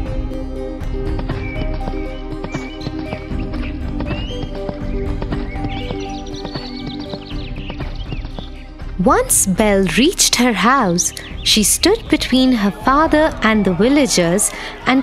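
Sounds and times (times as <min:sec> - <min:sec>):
background music: 0:00.0 - 0:15.0
cartoon hooves galloping: 0:00.9 - 0:15.0.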